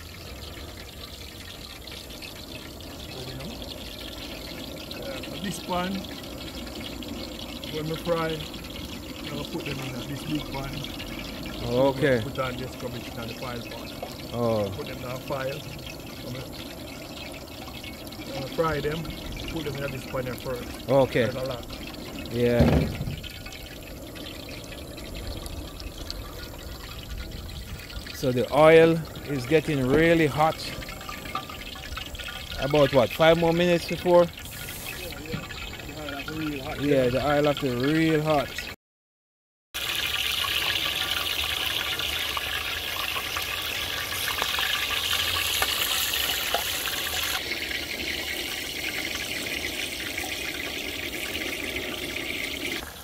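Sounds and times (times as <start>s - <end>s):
propane burners rushing: 0.0s - 38.7s, 39.8s - 53.0s
hot oil ticking: 0.0s - 38.8s, 39.8s - 53.0s.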